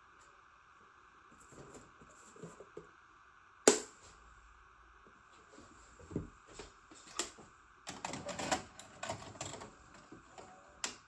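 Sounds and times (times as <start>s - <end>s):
faint steady whine: 0.0s - 11.0s.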